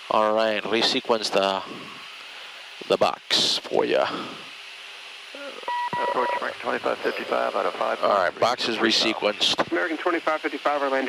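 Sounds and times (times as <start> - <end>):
jet cockpit noise: 0.0 - 11.0
steady electronic beep: 5.7 - 6.5.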